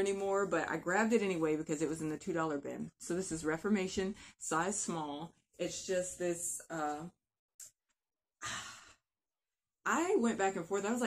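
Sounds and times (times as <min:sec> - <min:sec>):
woman sighing: 0:08.4 - 0:09.0.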